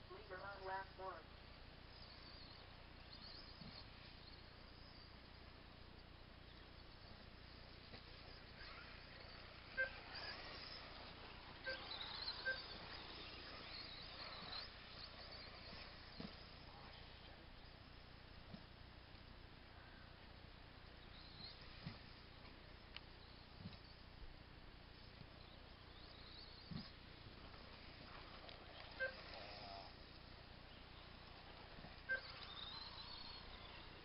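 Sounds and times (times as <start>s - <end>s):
toy car motor whine: 7.6s - 17.3s, 27.6s - 30.2s, 30.8s - 34.0s.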